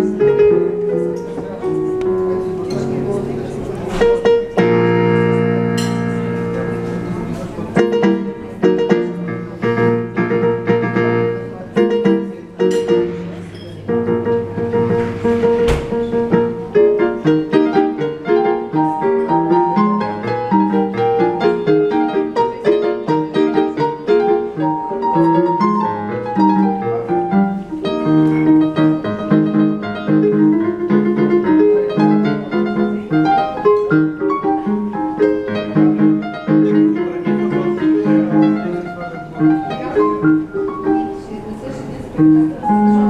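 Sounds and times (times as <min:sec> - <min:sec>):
electronic keyboard piano: 0:00.0 - 0:43.0.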